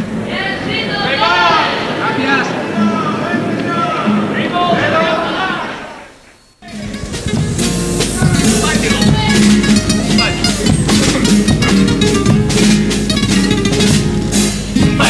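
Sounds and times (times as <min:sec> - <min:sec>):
guitars strumming: 0:06.6 - 0:15.0
bass drum and snare beat: 0:06.7 - 0:15.0.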